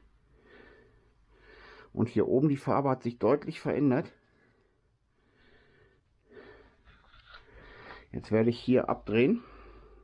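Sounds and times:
person breathing faintly: 0.0 - 2.0, 4.2 - 8.2, 9.0 - 10.0.

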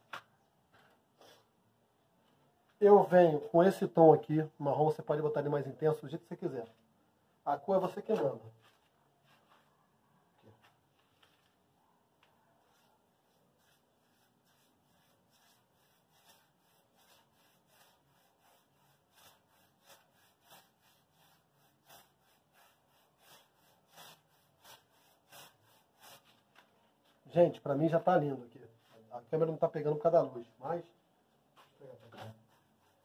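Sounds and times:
paintbrush scrubbing on rough wall: 12.6 - 26.5, 31.9 - 33.0.

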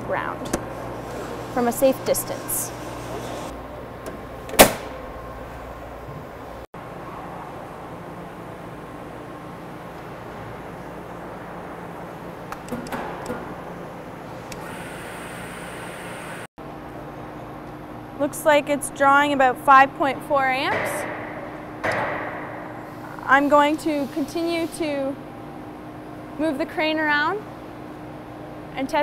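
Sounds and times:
machinery hum: 0.0 - 29.0
metal door banging shut: 4.5 - 5.0.

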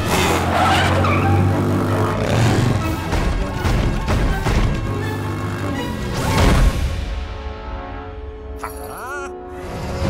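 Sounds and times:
motorcycle engine revving: 0.0 - 3.1.

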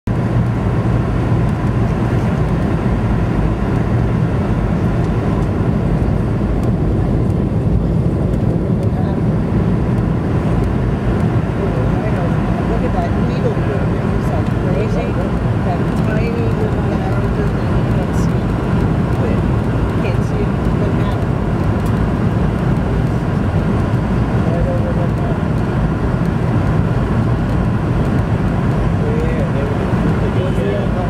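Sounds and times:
jet cabin engine roar: 0.1 - 31.0.

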